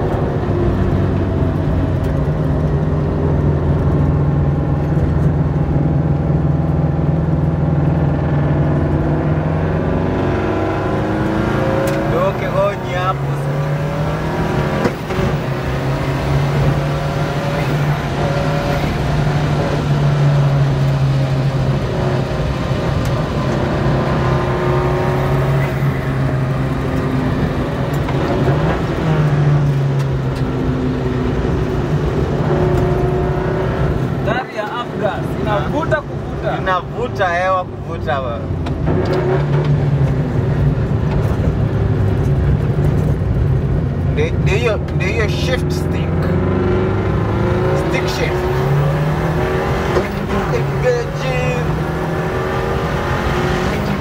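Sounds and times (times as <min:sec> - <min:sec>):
car engine heard from cabin: 0:00.0 - 0:54.0.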